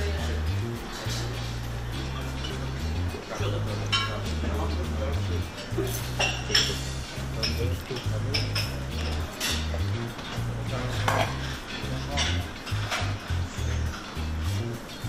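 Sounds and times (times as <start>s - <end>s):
background music with deep bass: 0.0s - 15.0s
utensils clinking against dishes: 0.0s - 15.0s.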